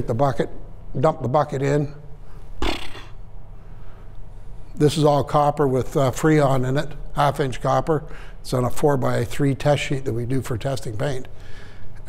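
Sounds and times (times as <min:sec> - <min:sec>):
steady low hum: 0:00.0 - 0:12.0
man breathing sharply through nose: 0:11.3 - 0:12.0.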